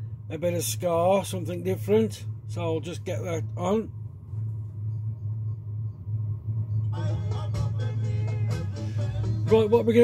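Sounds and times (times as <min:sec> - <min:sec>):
low electrical hum: 0:00.0 - 0:10.0
ska background music: 0:06.9 - 0:10.0.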